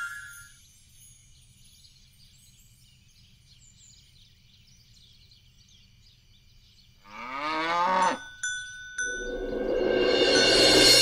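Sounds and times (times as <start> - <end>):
bright bell dings: 0.0 - 0.7, 8.0 - 11.0
cow mooing: 7.1 - 8.2.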